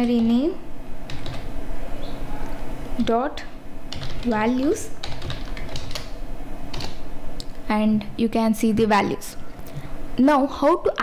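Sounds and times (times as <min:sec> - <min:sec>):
computer keyboard typing: 0:01.1 - 0:01.5, 0:03.9 - 0:07.0.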